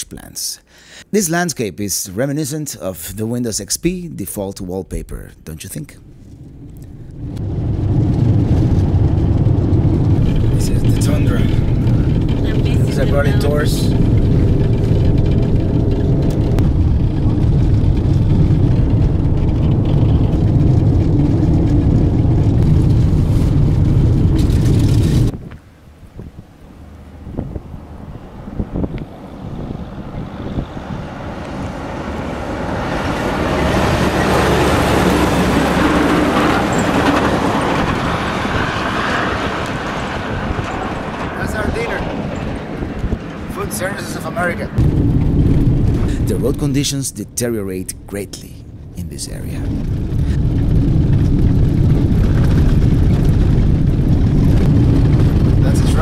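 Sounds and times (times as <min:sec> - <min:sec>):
vehicle interior road rumble: 0:05.1 - 0:56.0
truck passing on gravel: 0:06.0 - 0:56.0.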